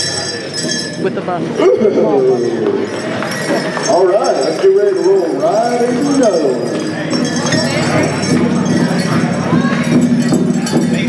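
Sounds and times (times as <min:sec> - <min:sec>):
people talking and laughing: 0:00.0 - 0:11.0
small bells jingling: 0:00.0 - 0:11.0.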